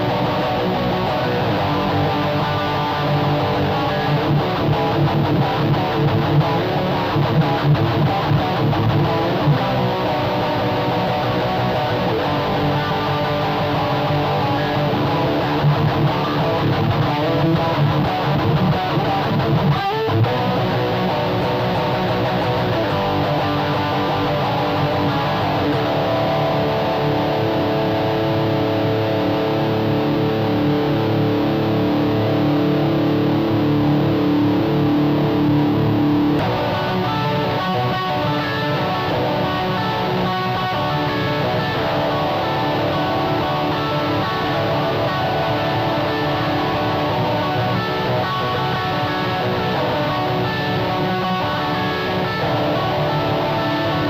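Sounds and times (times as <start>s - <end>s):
electric guitar playing: 0.0s - 54.0s.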